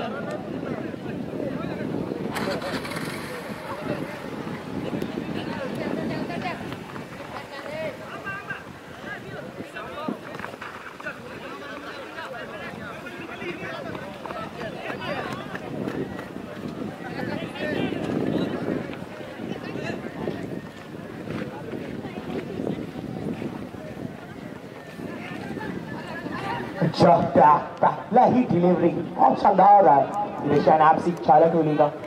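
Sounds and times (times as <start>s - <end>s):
crowd talking and calling out: 0.0s - 32.0s
faint voices: 0.0s - 32.0s
wind buffeting microphone: 0.0s - 32.0s.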